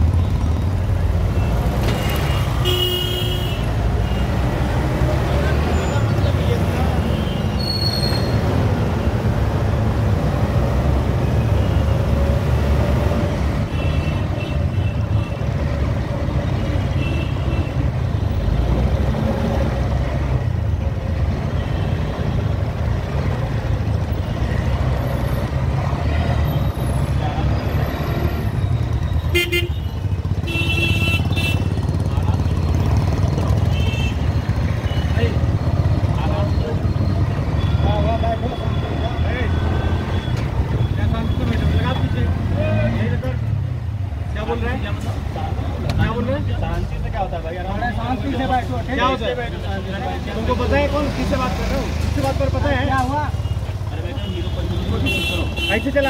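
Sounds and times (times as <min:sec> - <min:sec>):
road traffic rumble: 0:00.0 - 0:56.0
scooter and bus engines running: 0:00.0 - 0:56.0
vehicle horn toots: 0:02.0 - 0:03.7, 0:29.3 - 0:31.7, 0:53.5 - 0:56.0.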